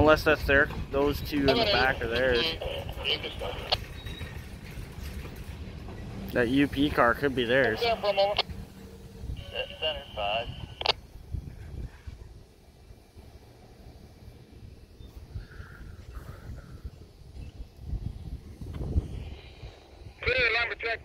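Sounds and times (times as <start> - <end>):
wind buffeting microphone: 0.0 - 20.2
voice over radio scanner: 1.0 - 3.8, 6.8 - 8.4, 9.4 - 11.0, 20.2 - 21.0.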